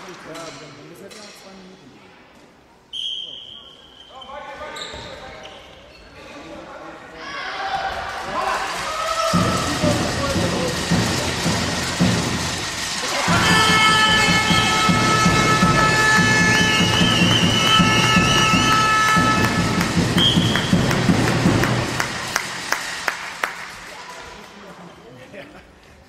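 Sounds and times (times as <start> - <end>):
crowd noise in sports hall: 0.0 - 26.0
rhythmic thumping: 9.2 - 23.7
long held horn tone: 13.7 - 20.4.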